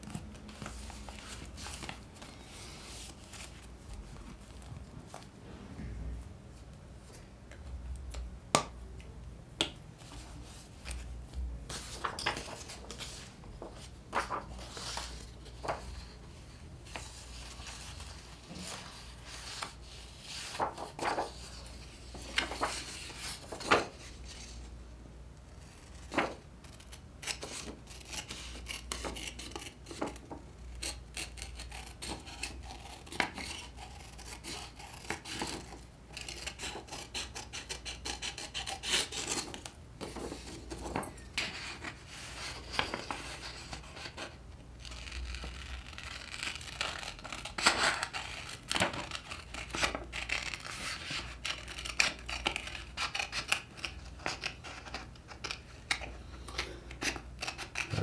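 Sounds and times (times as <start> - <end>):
page rustling: 10.1 - 16.1, 16.8 - 24.6, 25.8 - 30.4, 39.4 - 55.6
scissors snipping paper: 27.2 - 39.6.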